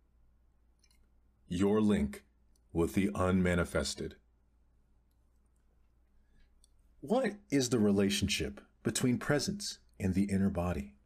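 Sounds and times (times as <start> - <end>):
faint clicks: 0.8 - 1.2
narrator speaking: 1.5 - 4.2, 7.0 - 11.0.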